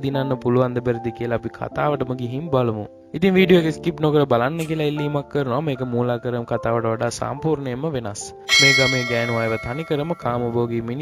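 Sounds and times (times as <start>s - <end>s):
person speaking: 8.5s - 10.7s
bell ringing: 8.5s - 11.0s.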